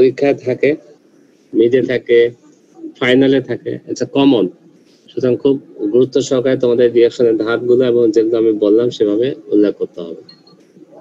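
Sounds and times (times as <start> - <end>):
man talking: 0.0 - 10.3.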